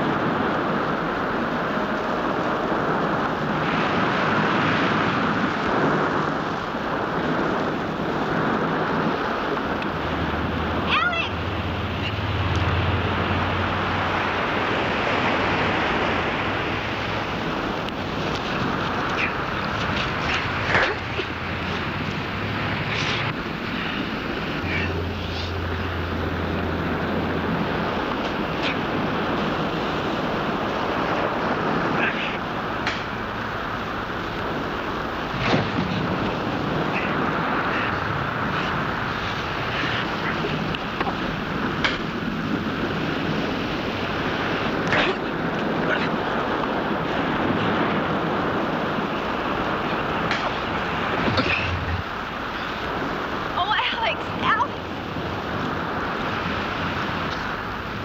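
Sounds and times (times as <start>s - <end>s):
surf: 0.0s - 58.0s
wind noise: 0.0s - 58.0s.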